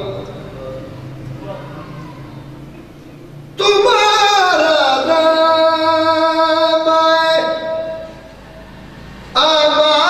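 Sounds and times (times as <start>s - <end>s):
man singing a long note: 3.6s - 8.2s.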